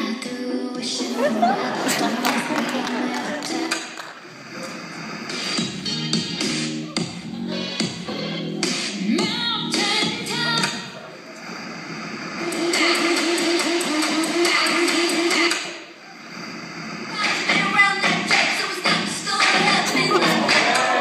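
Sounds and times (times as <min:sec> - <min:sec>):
dance music: 0:00.0 - 0:21.0.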